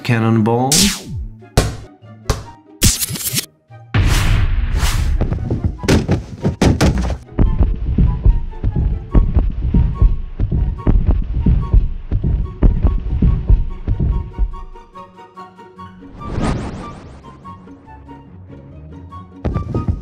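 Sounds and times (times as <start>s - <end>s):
background music: 0.0s - 20.0s
bricks knocking and tumbling: 5.2s - 8.0s.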